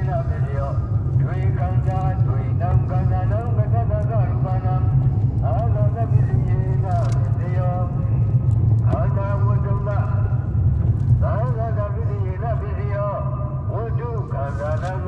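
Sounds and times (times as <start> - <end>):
man talking: 0.0 - 8.3, 8.9 - 10.3, 11.2 - 15.0
car engine and tyres rumbling: 0.0 - 15.0.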